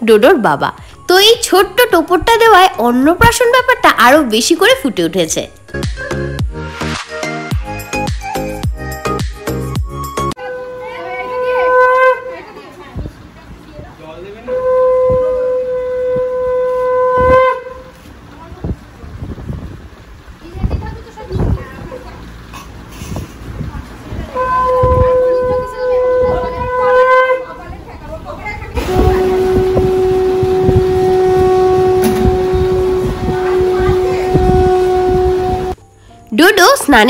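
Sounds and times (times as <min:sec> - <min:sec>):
conch shell blown: 0:10.4 - 0:12.5, 0:14.4 - 0:18.0, 0:24.3 - 0:27.6, 0:28.8 - 0:35.9
people murmuring: 0:10.4 - 0:16.4, 0:20.4 - 0:35.3.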